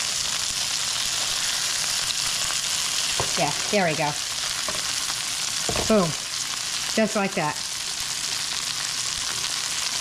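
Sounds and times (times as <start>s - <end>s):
meat sizzling in a skillet: 0.0s - 10.0s.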